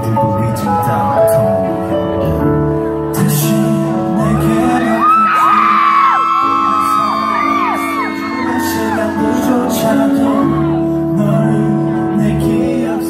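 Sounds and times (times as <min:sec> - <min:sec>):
pop ballad keyboard chords: 0:00.0 - 0:13.0
fans screaming and whooping: 0:04.3 - 0:11.0.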